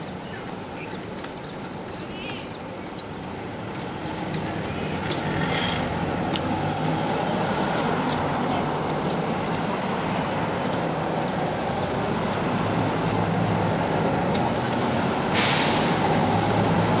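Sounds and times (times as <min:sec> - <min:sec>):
vehicles passing: 0:00.0 - 0:17.0
loud hiss: 0:15.3 - 0:16.2.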